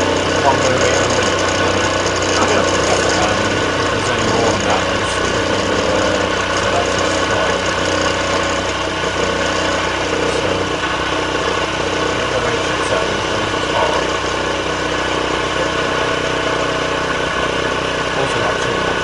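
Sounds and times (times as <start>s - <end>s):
cutter grinding through metal: 0.0s - 19.0s
milling machine spindle hum: 0.0s - 19.0s.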